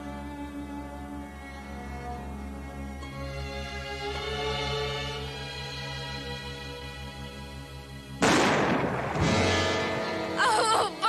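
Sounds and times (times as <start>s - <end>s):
dramatic background music: 0.0s - 11.0s
gunshot with echoing tail: 8.2s - 10.0s.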